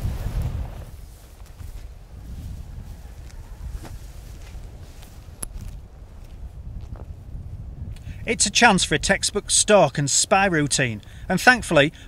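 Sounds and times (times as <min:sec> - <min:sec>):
wind rumble on microphone: 0:00.0 - 0:09.5.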